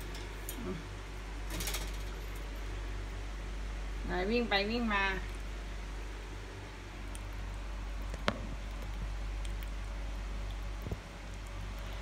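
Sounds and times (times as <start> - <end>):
steady low hum: 0.0 - 12.0
metallic clicking of wire cage: 1.5 - 2.5.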